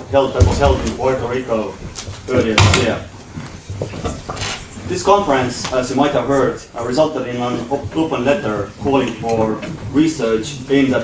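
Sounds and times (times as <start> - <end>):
man speaking: 0.0 - 3.2, 4.8 - 11.0.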